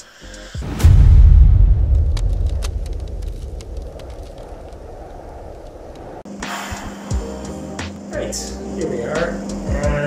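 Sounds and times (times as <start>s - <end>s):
deep rumble: 0.6s - 6.3s
sharp crackles: 0.7s - 6.2s.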